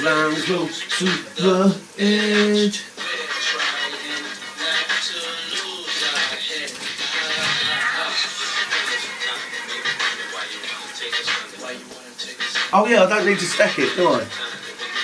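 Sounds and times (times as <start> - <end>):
recorded music with voice: 0.0 - 15.0.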